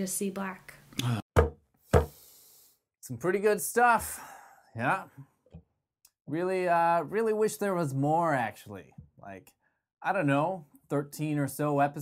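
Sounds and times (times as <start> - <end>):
knocks on a hard surface: 1.4 - 2.2.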